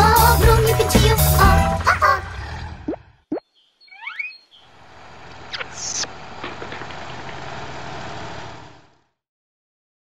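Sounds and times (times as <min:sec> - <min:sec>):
short rising chirps: 0:02.9 - 0:04.6, 0:05.5 - 0:06.1.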